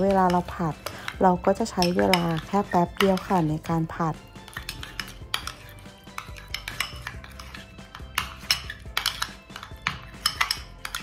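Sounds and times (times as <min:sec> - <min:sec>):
metal spoon stirring in ceramic bowl: 0:00.0 - 0:11.0.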